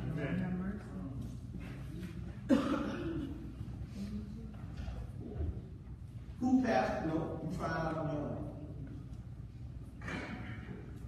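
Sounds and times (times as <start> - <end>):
loud cough: 2.5 - 3.5, 10.0 - 10.8.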